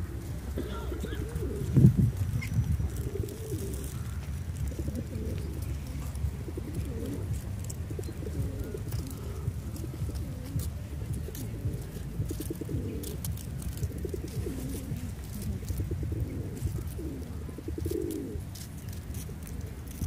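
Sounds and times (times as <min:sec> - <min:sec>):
pigeons cooing: 0:00.0 - 0:20.0.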